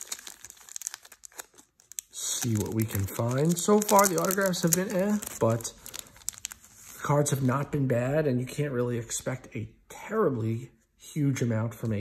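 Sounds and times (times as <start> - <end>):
plastic wrapping crinkling: 0.0 - 7.6.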